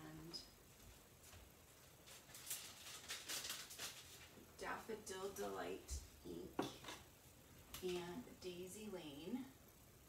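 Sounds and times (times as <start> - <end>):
paper rustling: 0.8 - 4.5.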